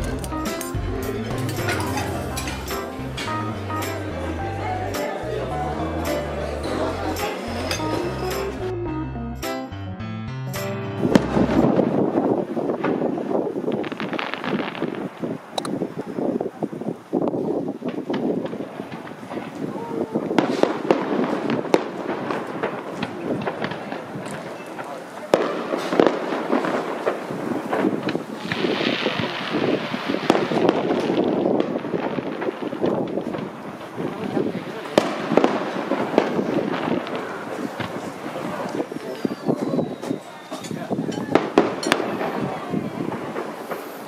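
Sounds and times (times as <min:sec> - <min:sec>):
fireworks bangs and crackles: 0:00.0 - 0:04.4, 0:11.0 - 0:44.0
crowd voices: 0:00.0 - 0:44.0.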